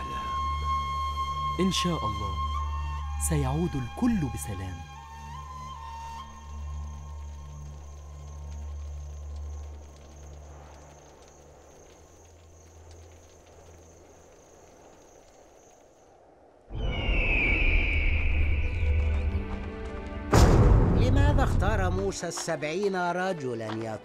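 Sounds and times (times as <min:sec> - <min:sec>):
soft sustained background score: 0:00.0 - 0:20.9.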